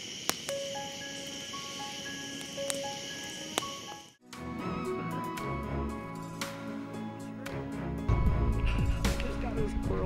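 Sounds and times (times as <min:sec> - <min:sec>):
campfire crackling: 0:00.0 - 0:04.2.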